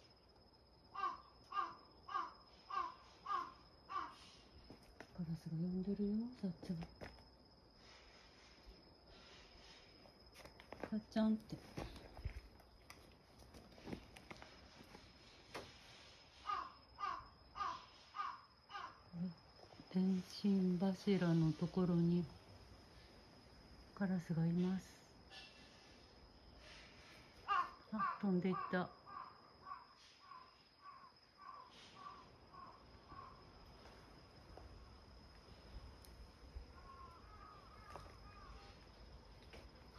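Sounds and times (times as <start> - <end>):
crow cawing: 1.0 - 4.4, 16.4 - 19.0, 27.4 - 33.4, 36.7 - 38.8.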